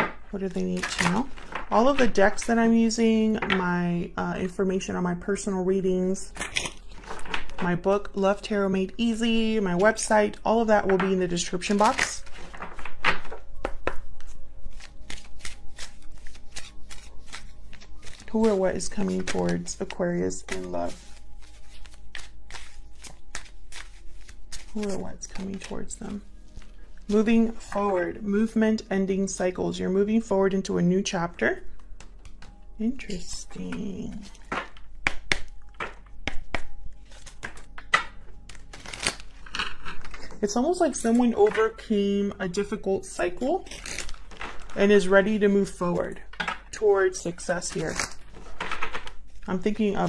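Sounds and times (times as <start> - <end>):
cards being shuffled: 11.5 - 26.8, 32.0 - 40.4, 47.6 - 49.3.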